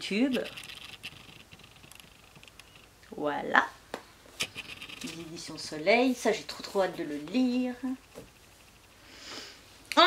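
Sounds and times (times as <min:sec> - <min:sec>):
person sniffing: 0:09.0 - 0:09.7.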